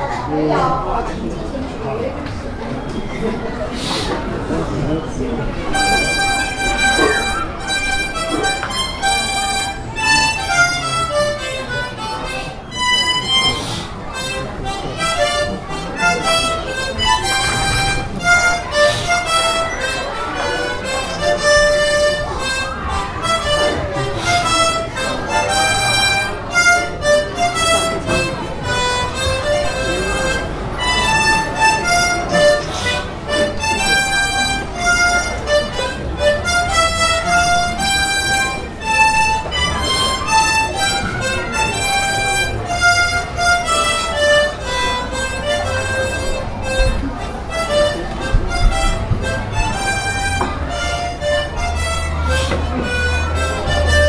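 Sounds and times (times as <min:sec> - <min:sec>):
harmonicas playing a march: 0:05.6 - 0:54.0.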